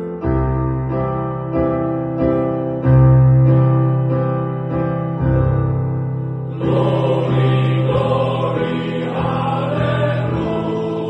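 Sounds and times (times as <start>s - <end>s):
male voice choir singing: 6.5s - 11.0s.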